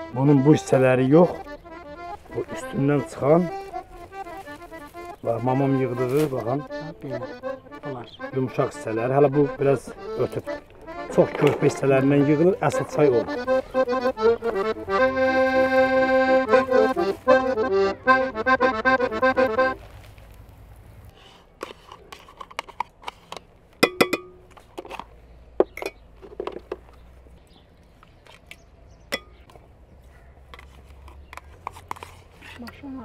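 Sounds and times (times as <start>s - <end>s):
accordion chords: 0.0s - 20.0s.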